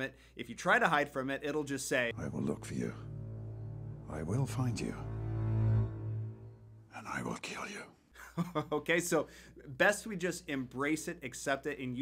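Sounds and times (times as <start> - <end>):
dark low drone music: 2.1 - 7.0.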